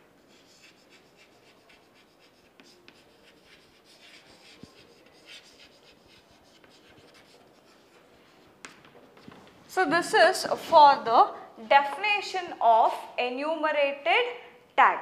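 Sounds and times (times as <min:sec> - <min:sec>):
chalk tapping on chalkboard: 0:00.2 - 0:09.6
chalk scratching on chalkboard: 0:00.2 - 0:09.7.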